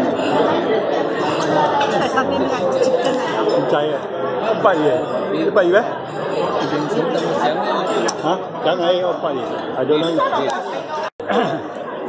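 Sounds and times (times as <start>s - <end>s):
overlapping conversation: 0.0s - 12.0s.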